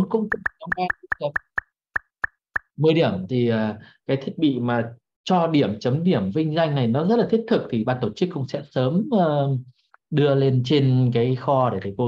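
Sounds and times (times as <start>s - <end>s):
short plopping blips: 0.3s - 2.7s.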